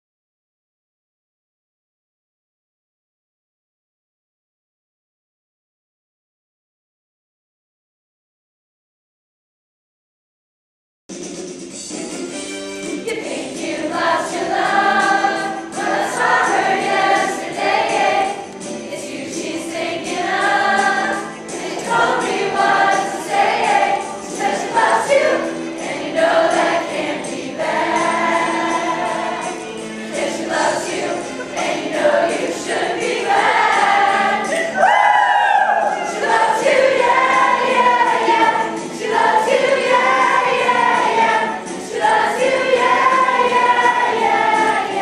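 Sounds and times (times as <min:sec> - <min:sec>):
choir singing a pop song: 0:12.9 - 0:45.0.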